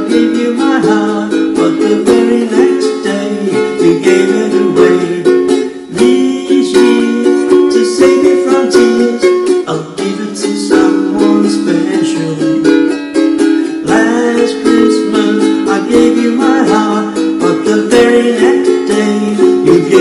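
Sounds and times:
ukulele strumming chords: 0:00.0 - 0:20.0.

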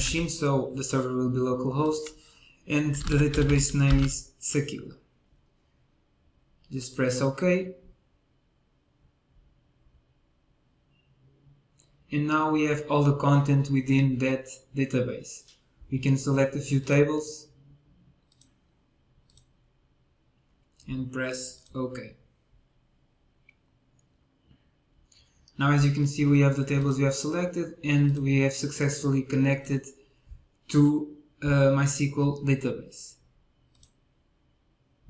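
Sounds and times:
computer mouse click: 0:18.2 - 0:18.6, 0:19.3 - 0:19.5, 0:33.7 - 0:34.0.

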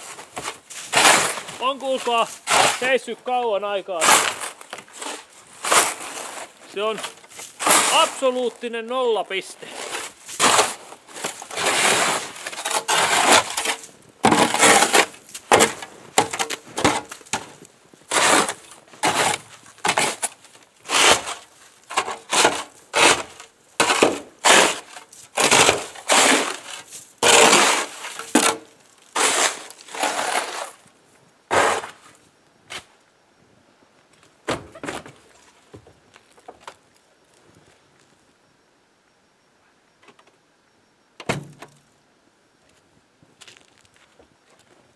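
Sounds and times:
snow brush sweeping snow off car: 0:00.0 - 0:03.0, 0:04.0 - 0:08.3, 0:09.6 - 0:15.1, 0:20.8 - 0:21.5, 0:22.3 - 0:28.2, 0:29.2 - 0:30.8
snow crunching: 0:00.0 - 0:20.2.

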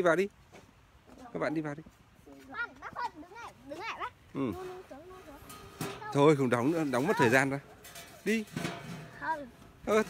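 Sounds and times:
young children chattering: 0:02.2 - 0:08.2, 0:08.9 - 0:09.8.

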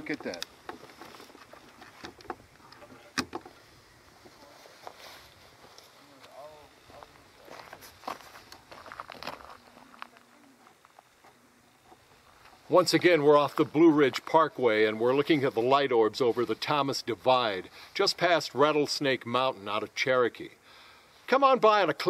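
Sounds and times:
faint background talk: 0:09.2 - 0:11.0.

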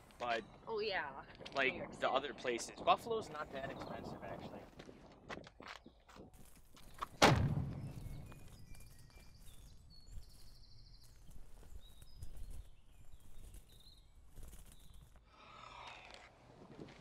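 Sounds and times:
high bird chirps: 0:07.7 - 0:15.2.

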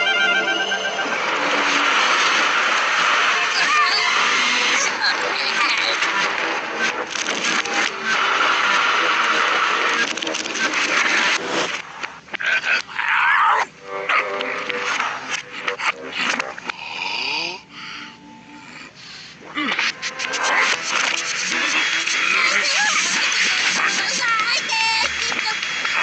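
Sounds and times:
reversed cartoon sound effects: 0:00.0 - 0:11.8, 0:12.5 - 0:26.0
animal-like vocal sounds: 0:12.3 - 0:20.8.

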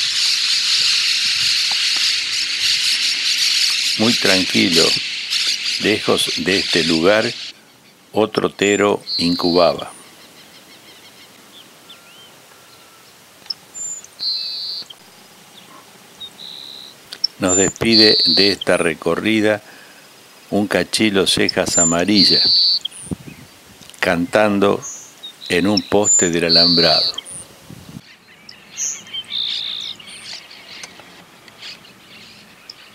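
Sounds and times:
birds chirping: 0:00.0 - 0:32.9
faint steady hiss: 0:00.0 - 0:32.9
insect calls: 0:00.0 - 0:32.9
thin high chirps: 0:13.5 - 0:15.0, 0:16.3 - 0:18.8, 0:21.4 - 0:23.1, 0:24.9 - 0:27.5
high buzzy bird note: 0:15.7 - 0:18.8, 0:21.7 - 0:23.0, 0:25.5 - 0:27.5.

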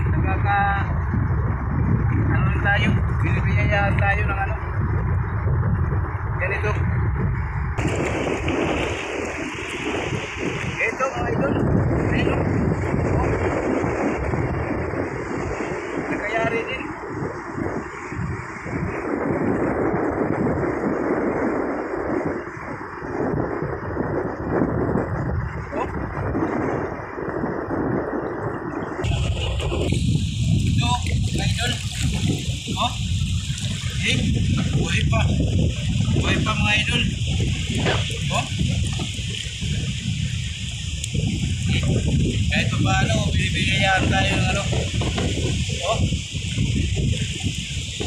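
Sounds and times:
wind buffeting microphone: 0:00.0 - 0:48.0
sea water sloshing: 0:07.8 - 0:11.3, 0:28.4 - 0:42.2.

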